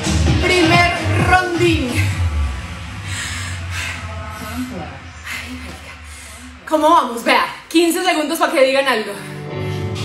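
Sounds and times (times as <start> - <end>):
low hum: 0.5 - 7.7.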